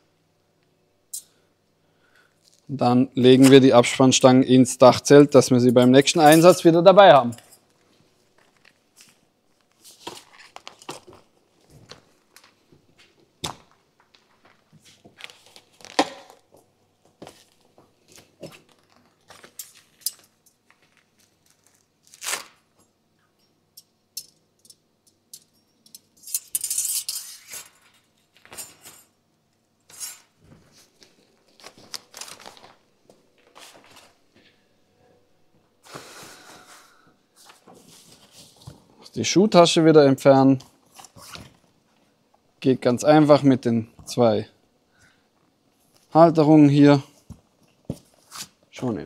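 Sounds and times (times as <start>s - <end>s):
metal rods clicking and clinking: 23.4s - 29.1s.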